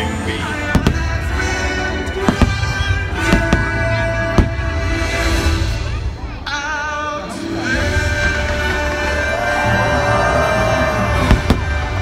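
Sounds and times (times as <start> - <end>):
steady music: 0.0 - 12.0
fireworks bangs: 0.6 - 6.0, 11.0 - 12.0.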